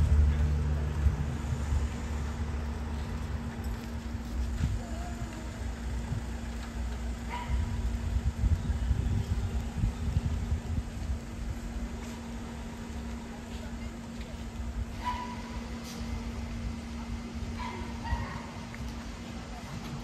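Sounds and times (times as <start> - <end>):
low rumble: 0.0 - 13.3.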